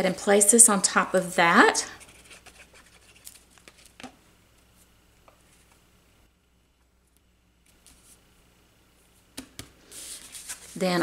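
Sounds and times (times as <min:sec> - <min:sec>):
paper rustling: 0:02.1 - 0:04.1, 0:09.8 - 0:11.0.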